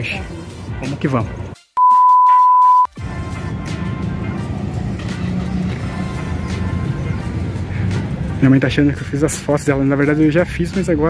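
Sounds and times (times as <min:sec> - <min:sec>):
background music: 0:00.0 - 0:11.0
test-tone beep: 0:01.8 - 0:02.9.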